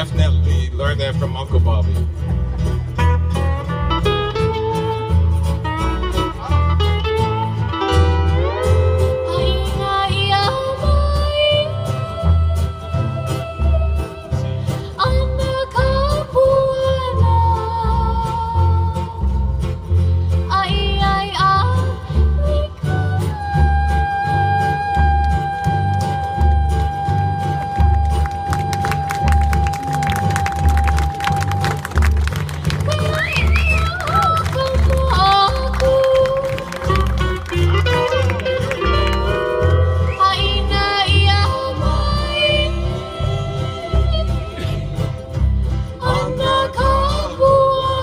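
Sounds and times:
bass notes: 0:00.0 - 0:48.0
sliding steel guitar line: 0:00.0 - 0:48.0
strummed ukuleles and guitars: 0:00.0 - 0:48.0
person singing: 0:46.0 - 0:48.0.

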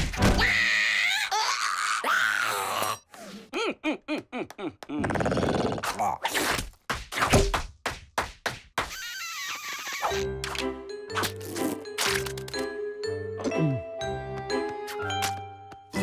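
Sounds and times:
cartoon character screaming: 0:00.4 - 0:03.0, 0:08.9 - 0:10.2
slaps and thuds: 0:06.4 - 0:08.9
squeaky yelps: 0:08.9 - 0:10.3.

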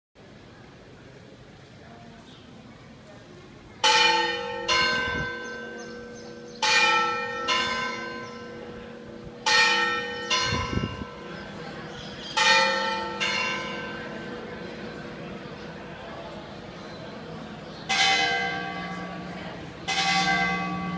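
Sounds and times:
church bells ringing: 0:03.8 - 0:20.9.

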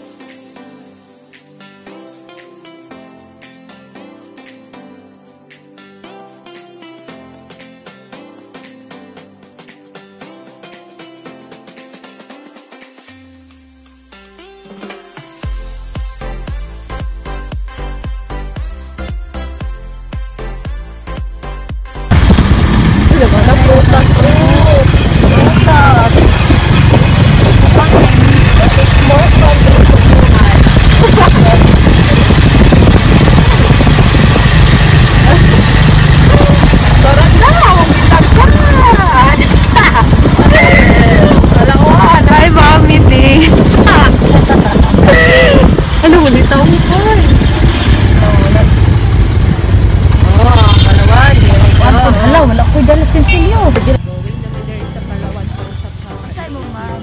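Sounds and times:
vehicle engine and road rumble: 0:21.8 - 0:57.0
wind buffeting microphone: 0:22.1 - 0:54.0
voices: 0:23.1 - 0:26.3, 0:27.6 - 0:32.2, 0:35.2 - 0:47.3, 0:50.3 - 0:57.0.

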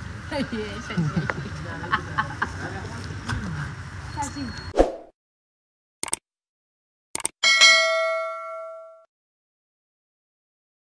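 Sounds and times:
short clicks: 0:06.0 - 0:06.2, 0:07.2 - 0:07.4
notification bell ding: 0:07.4 - 0:09.1.

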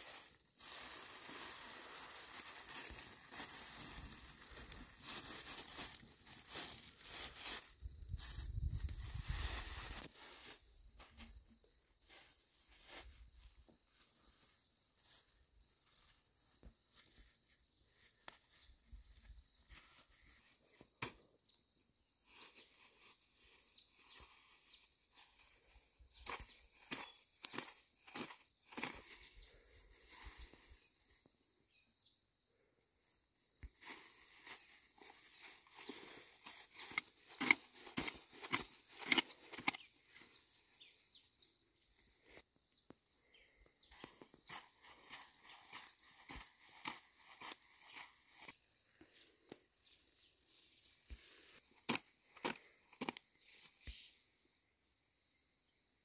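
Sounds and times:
hoe chopping and scraping soil: 0:36.5 - 0:39.9.

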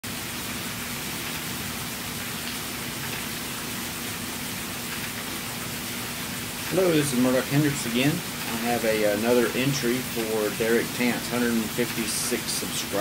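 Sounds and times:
steady background hiss: 0:00.1 - 0:13.0.

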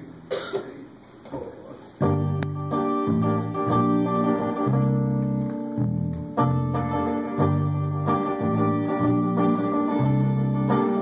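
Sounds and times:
person coughing: 0:00.3 - 0:00.8.

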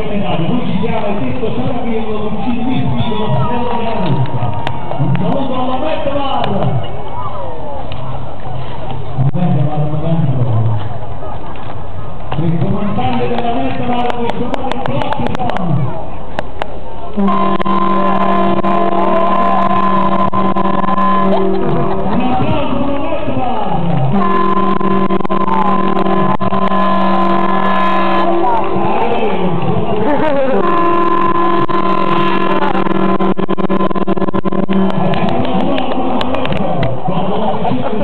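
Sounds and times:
ship's horn blast: 0:17.2 - 0:22.8, 0:24.1 - 0:35.4.

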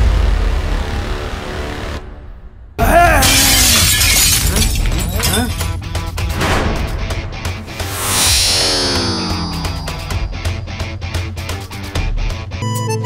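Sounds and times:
dramatic music: 0:00.0 - 0:13.0
voice crying out: 0:02.8 - 0:05.6
glass shattering crash: 0:02.9 - 0:05.8.

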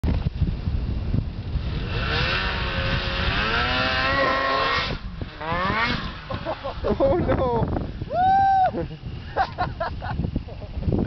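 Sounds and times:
snowmobile engine revving: 0:01.5 - 0:09.8.

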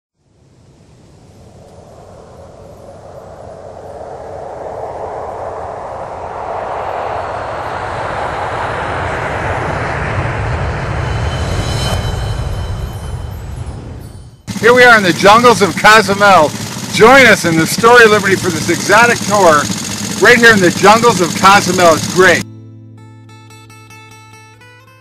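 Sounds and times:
whoosh like rushing wind: 0:00.3 - 0:14.4
low rumble: 0:00.4 - 0:15.8.

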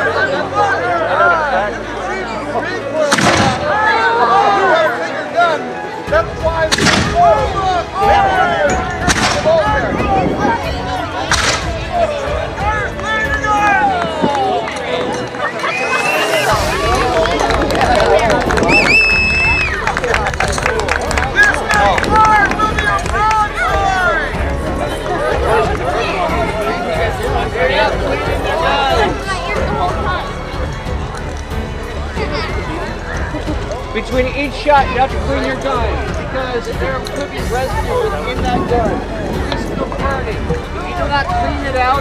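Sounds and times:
crowd chatter: 0:00.0 - 0:42.0
cannon shots: 0:03.1 - 0:03.7.

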